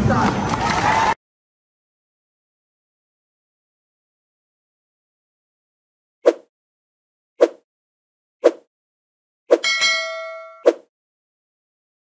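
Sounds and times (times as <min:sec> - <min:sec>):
notification bell ding: 0:09.6 - 0:10.7.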